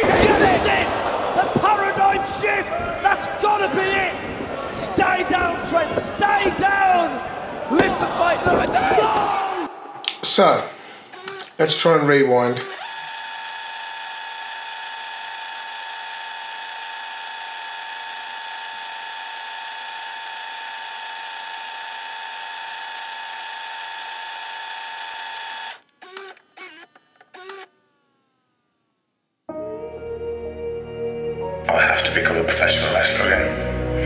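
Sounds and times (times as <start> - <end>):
tape rewind motor whine: 11.1 - 29.5.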